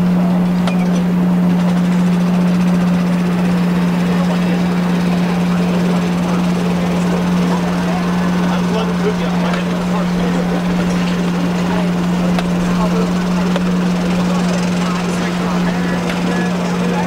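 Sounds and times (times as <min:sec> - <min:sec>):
loud steady low hum: 0:00.0 - 0:17.0
stadium crowd chatter: 0:00.0 - 0:17.0.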